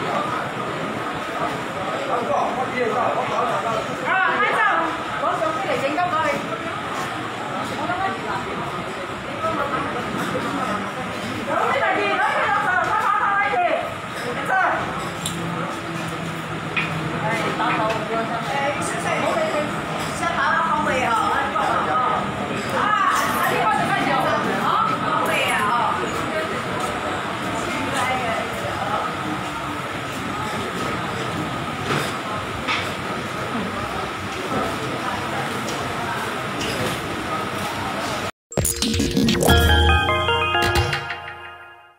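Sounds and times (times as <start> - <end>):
people speaking: 0.0 - 40.9.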